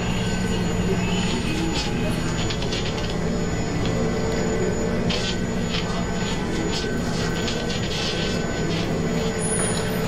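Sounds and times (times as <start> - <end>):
electric motors and gears humming: 0.0 - 10.0.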